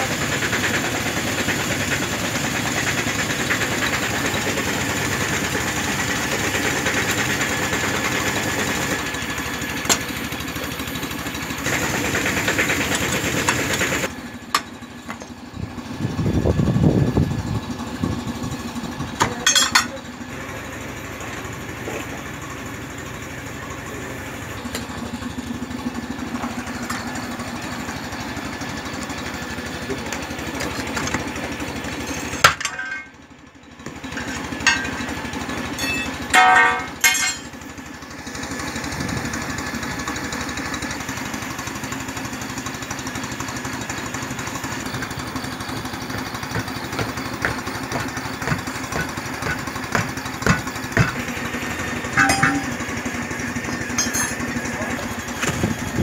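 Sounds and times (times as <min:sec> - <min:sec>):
engine running: 0:00.0 - 0:56.0
sharp knocks and clanks: 0:14.5 - 0:15.4, 0:33.8 - 0:35.1, 0:35.8 - 0:37.5, 0:46.0 - 0:51.4, 0:52.1 - 0:52.9, 0:53.9 - 0:54.5.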